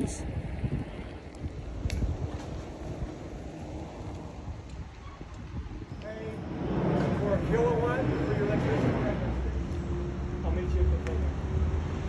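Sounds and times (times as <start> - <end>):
wind buffeting microphone: 0.0 - 10.2.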